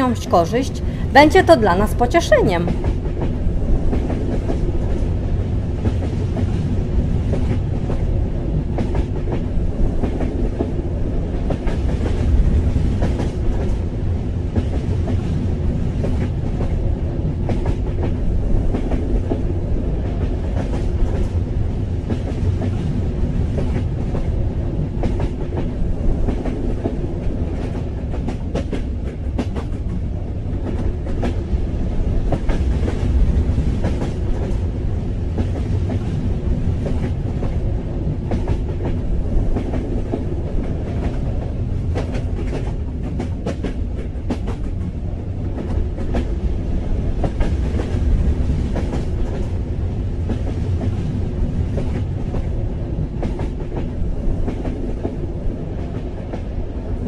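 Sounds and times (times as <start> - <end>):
train wheels clacking on rails: 0.0 - 57.0.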